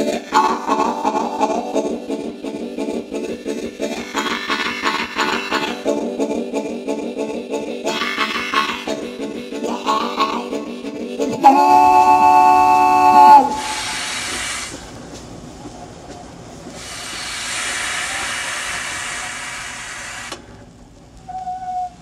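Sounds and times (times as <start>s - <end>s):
steam hissing: 0.0s - 22.0s
steam locomotive chime whistle: 11.4s - 14.5s, 21.3s - 22.0s.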